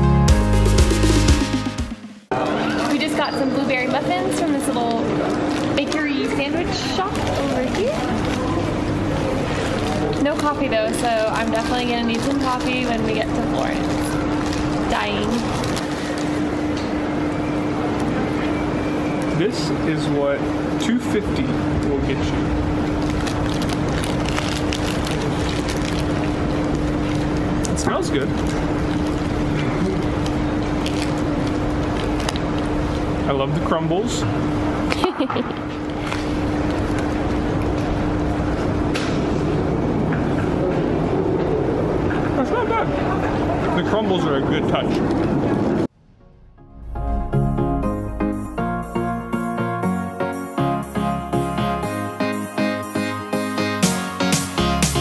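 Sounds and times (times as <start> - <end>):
constant machine hum: 2.3 - 48.9
low rumble: 21.3 - 27.7, 45.1 - 50.1.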